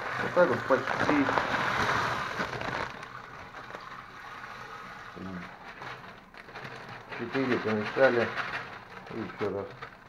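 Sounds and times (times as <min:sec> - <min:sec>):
plastic bag crinkling: 0:00.0 - 0:10.0
rice grains pouring into plastic drum: 0:00.0 - 0:10.0.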